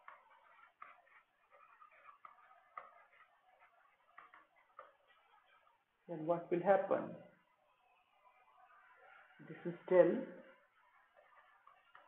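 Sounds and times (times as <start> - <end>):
stylus tapping on tablet: 0.0 - 5.2
stylus scratching on tablet: 0.0 - 12.0.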